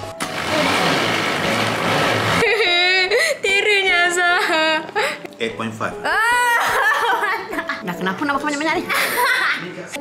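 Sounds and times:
blender motor whirring: 0.0 - 2.9.

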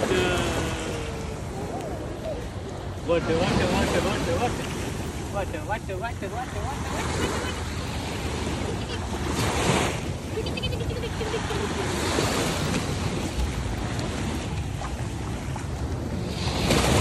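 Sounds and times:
small waves washing on sand: 0.0 - 17.0
wind rumble on microphone: 6.8 - 17.0.

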